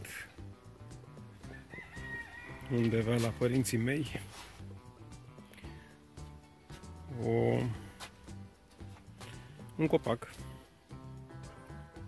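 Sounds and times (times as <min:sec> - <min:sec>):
faint background music: 0:00.0 - 0:12.0
rooster crowing: 0:01.4 - 0:03.5.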